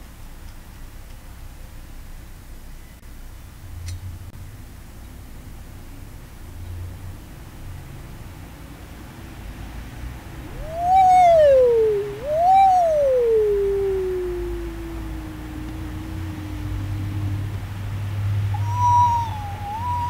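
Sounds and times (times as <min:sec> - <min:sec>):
low steady hum: 0:10.2 - 0:20.0
higher wavering tone: 0:10.4 - 0:20.0
sliding pitched tones: 0:10.4 - 0:20.0.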